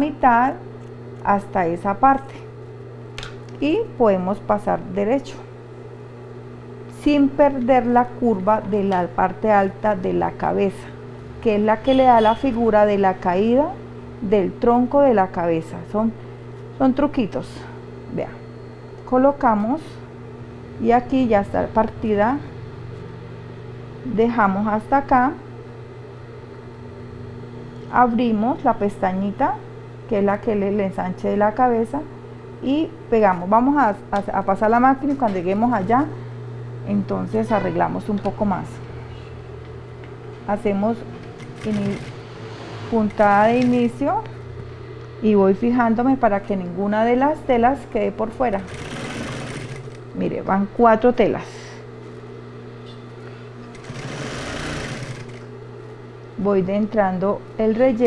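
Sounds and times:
steady low hum: 0.0s - 58.0s
sewing machine motor humming: 40.9s - 44.0s, 48.5s - 50.1s, 53.6s - 55.5s.

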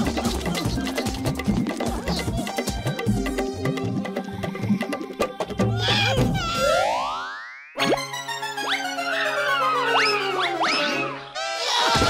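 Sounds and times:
music: 0.0s - 12.0s
cartoon rising glide: 5.8s - 11.8s.

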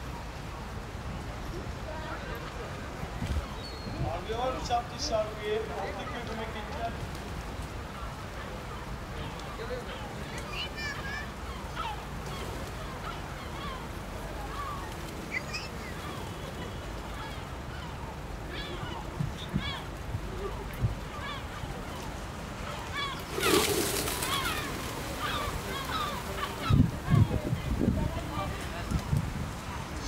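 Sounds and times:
low rumble of traffic: 0.0s - 30.0s
birds giving short calls: 22.9s - 27.7s
pigeons wingbeats taking off: 23.2s - 27.1s.

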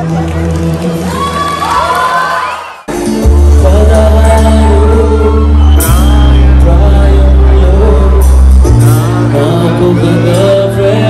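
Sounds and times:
audience cheering and whooping: 0.8s - 2.9s, 4.7s - 6.7s
live band music: 2.9s - 11.0s.

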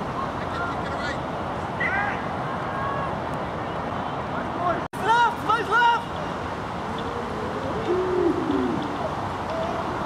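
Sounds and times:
outdoor background noise: 0.0s - 10.0s
wavering hoot-like call: 6.9s - 9.8s.

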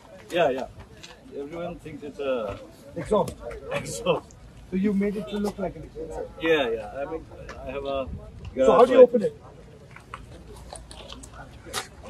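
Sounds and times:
small clicks and scrapes: 9.8s - 12.0s.

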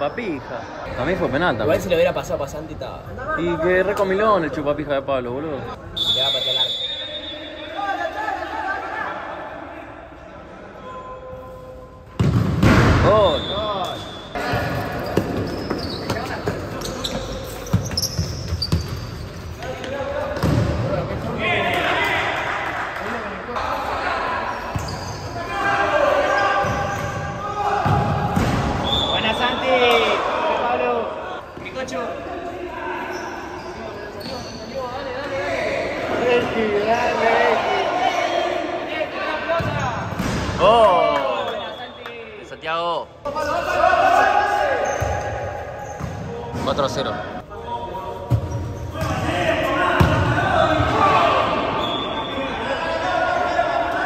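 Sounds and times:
players shouting in a hall: 6.4s - 12.0s, 21.2s - 33.8s, 35.0s - 40.0s, 43.2s - 46.0s, 48.9s - 54.0s.

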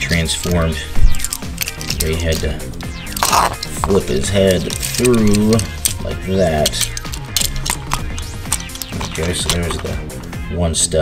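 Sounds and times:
background music: 0.0s - 11.0s
plastic toy clicks and snaps: 6.6s - 9.8s.

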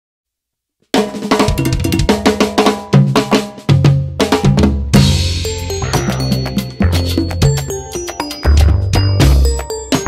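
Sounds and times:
drum kit with cymbals: 0.8s - 10.0s
latin percussion playing: 1.0s - 10.0s.

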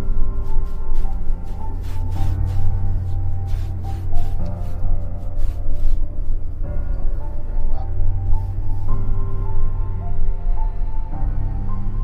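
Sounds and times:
heavy steady bass: 0.0s - 12.0s.

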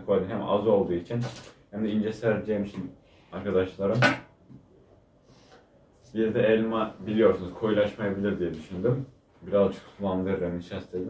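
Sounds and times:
man speaking: 0.0s - 4.2s, 6.0s - 11.0s.

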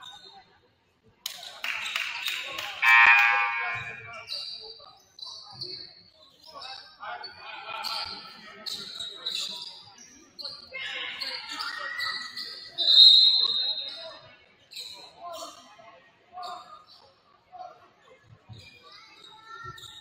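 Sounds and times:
players' voices: 1.6s - 4.4s
sneaker squeaks: 1.8s - 6.9s, 8.0s - 15.6s, 18.5s - 20.0s
scoreboard horn: 2.8s - 4.1s.

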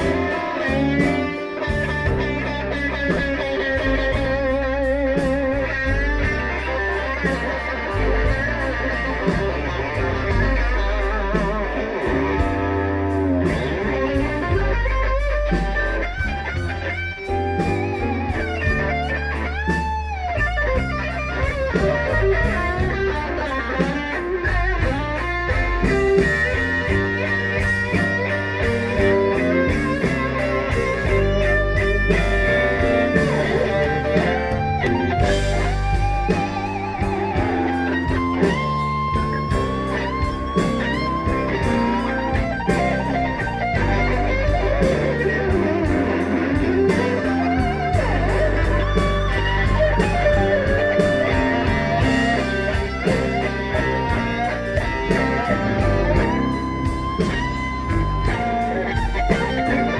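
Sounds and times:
electric guitar solo: 0.0s - 59.9s
live blues band: 0.0s - 59.9s.

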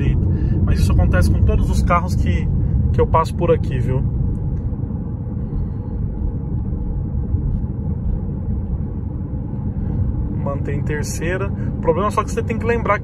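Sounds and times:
car engine running: 0.0s - 13.0s.

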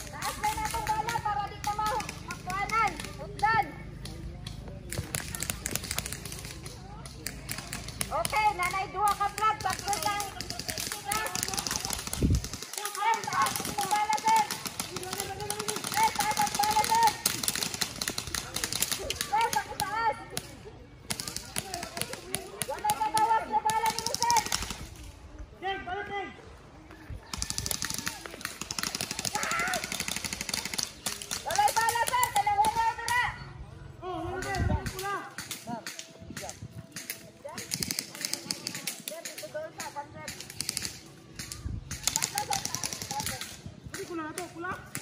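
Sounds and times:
airsoft guns firing: 0.0s - 4.1s, 4.9s - 25.0s, 27.3s - 33.2s, 34.4s - 45.0s
players calling out: 0.0s - 24.9s, 25.6s - 36.2s.

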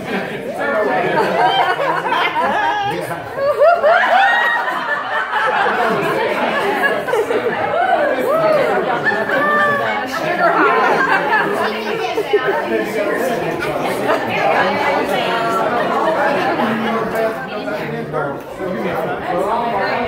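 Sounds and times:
overlapping conversational chatter: 0.0s - 20.0s.

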